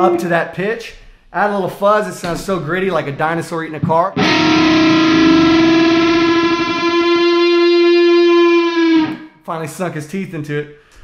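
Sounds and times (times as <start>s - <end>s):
fuzz electric guitar note: 4.2s - 9.3s.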